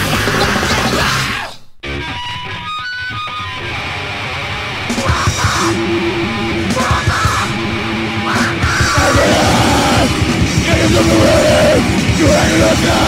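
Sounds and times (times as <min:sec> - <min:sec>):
loud hardcore punk music: 0:00.0 - 0:13.0
distorted electric guitar picking: 0:01.8 - 0:13.0.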